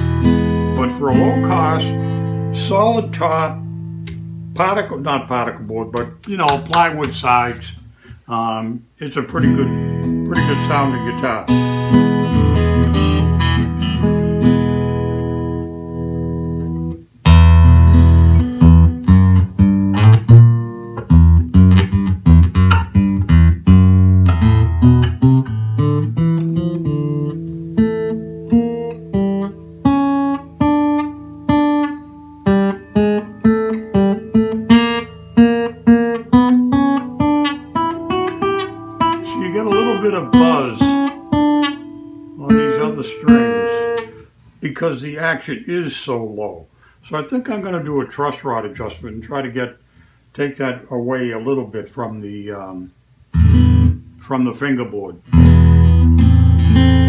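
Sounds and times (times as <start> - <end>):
acoustic guitar fingerstyle: 0.0 - 8.2, 9.3 - 44.4, 53.3 - 54.2, 55.2 - 57.0.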